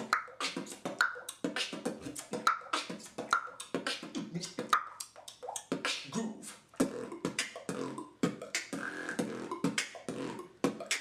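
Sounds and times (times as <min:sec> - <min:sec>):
beatboxing: 0:00.0 - 0:11.0.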